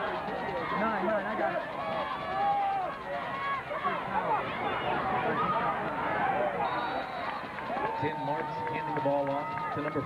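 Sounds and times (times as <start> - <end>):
crowd shouting: 0.0 - 9.8.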